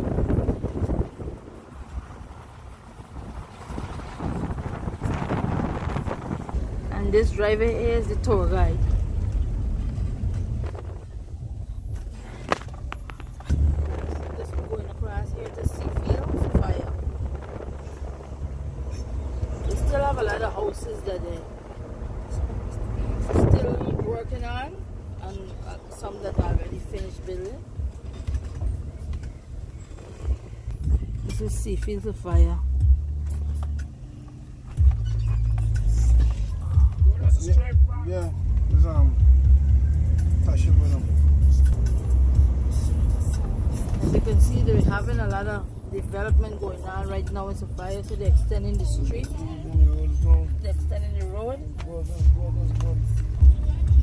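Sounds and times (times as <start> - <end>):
wind buffeting microphone: 0.0 - 31.5, 43.6 - 46.6
road and engine rumble: 0.0 - 54.0.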